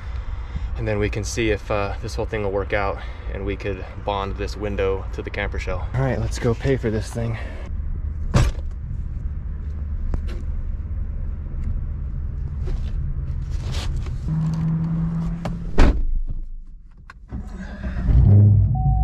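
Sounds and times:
car engine starting and running: 6.2 - 19.0
car door shutting: 14.4 - 17.4.

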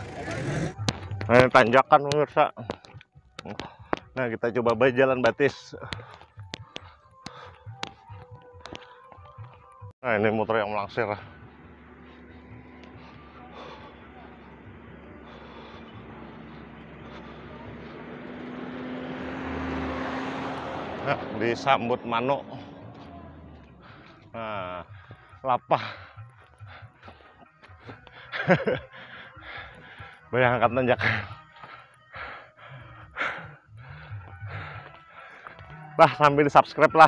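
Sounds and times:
small vehicle engine droning: 0.0 - 37.0
man breathing hard: 2.6 - 4.2, 5.8 - 9.9, 11.1 - 20.4, 22.5 - 30.4, 31.0 - 36.0.

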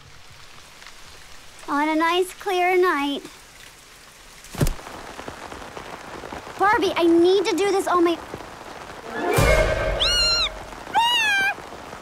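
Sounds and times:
rain falling: 0.0 - 12.0.

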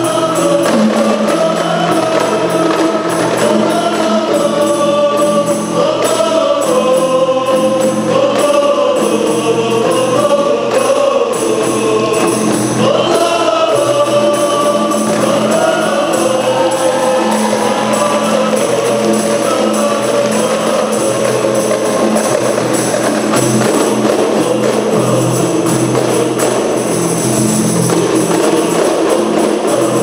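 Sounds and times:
frame drums beating: 0.0 - 30.0
men singing together: 0.0 - 30.0.

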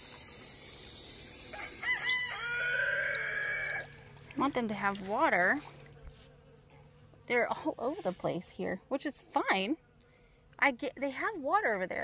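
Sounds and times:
rooster crowing: 1.5 - 4.0.

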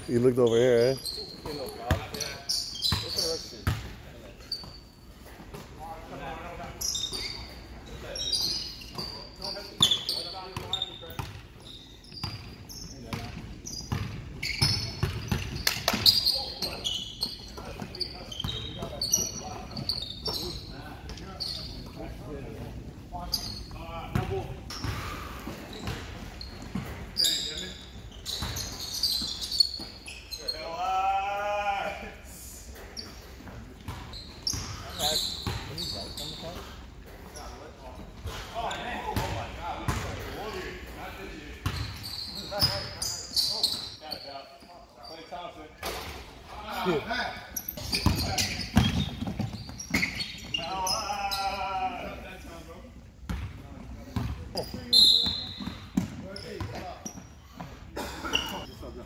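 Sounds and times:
players' voices: 30.1 - 59.0.

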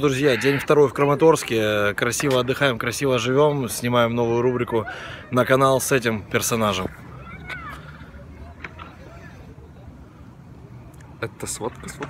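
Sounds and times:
street ambience rumble: 0.0 - 12.0.

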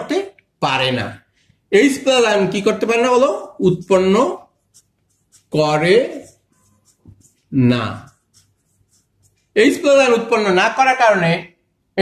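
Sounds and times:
marker scratching on whiteboard: 2.4 - 11.0.

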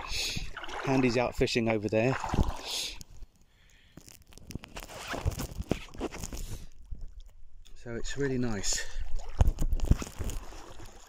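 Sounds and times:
water sloshing around wading person: 0.0 - 3.0, 8.0 - 11.0.

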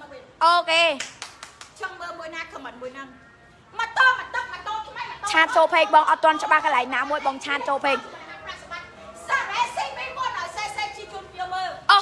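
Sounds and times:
sharp hand claps: 1.0 - 1.8.

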